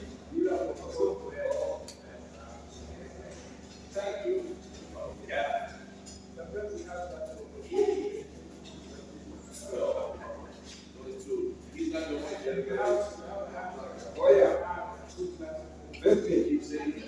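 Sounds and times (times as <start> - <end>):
indistinct voices talking: 0.0 - 17.0.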